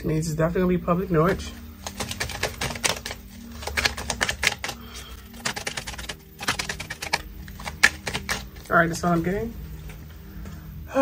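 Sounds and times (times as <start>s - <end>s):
cards clicking and tapping: 1.8s - 8.7s.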